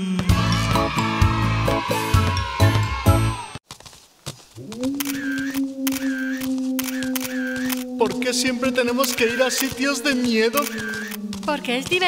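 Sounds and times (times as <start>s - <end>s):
cartoon camera shutter snapping: 5.0s - 7.9s, 10.6s - 11.2s.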